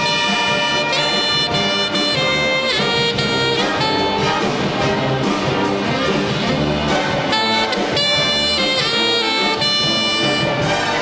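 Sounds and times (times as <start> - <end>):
sliding brass notes: 0.0 - 11.0
wind orchestra playing: 0.0 - 11.0.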